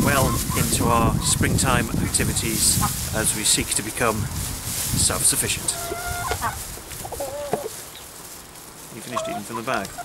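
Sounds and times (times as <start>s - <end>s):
hens clucking: 0.0s - 4.4s, 5.0s - 8.2s, 8.8s - 10.0s.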